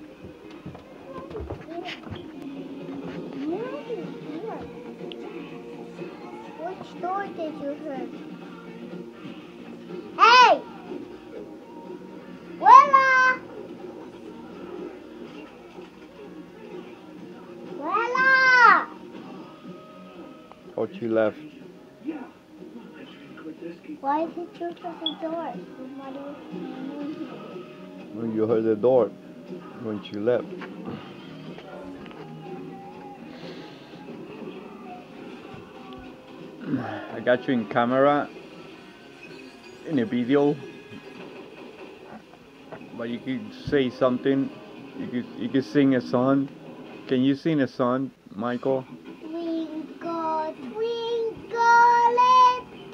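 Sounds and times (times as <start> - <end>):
faint voices murmuring: 19.3 - 39.0.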